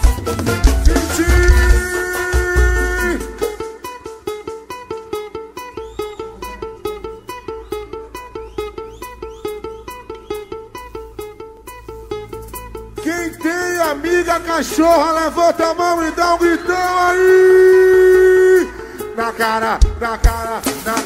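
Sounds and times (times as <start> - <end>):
bass and drums: 0.0 - 3.6, 19.8 - 21.0
plucked string riff: 0.0 - 21.0.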